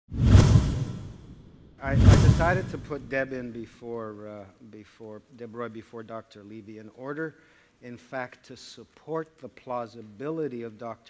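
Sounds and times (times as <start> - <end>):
whoosh with deep low rumble: 0.1 - 3.2
man's voice: 1.8 - 11.0.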